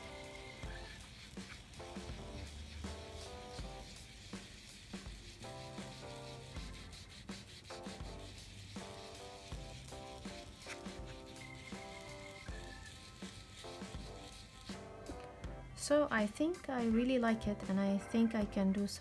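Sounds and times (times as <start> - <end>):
foam tool swishing on paper: 0.0 - 17.2
gentle background music: 0.0 - 19.0.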